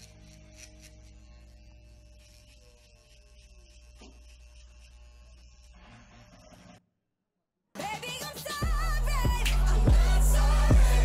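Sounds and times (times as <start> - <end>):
electric hair clippers buzzing: 0.0 - 6.6
rasping of hair cutting: 0.0 - 6.8.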